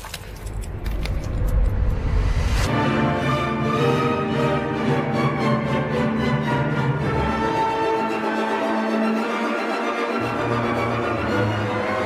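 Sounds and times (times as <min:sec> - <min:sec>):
deep low rumble: 0:00.3 - 0:02.7.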